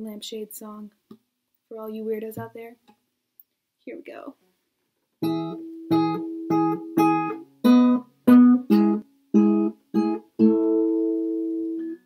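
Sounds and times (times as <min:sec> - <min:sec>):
acoustic guitar strumming: 0:05.2 - 0:12.0.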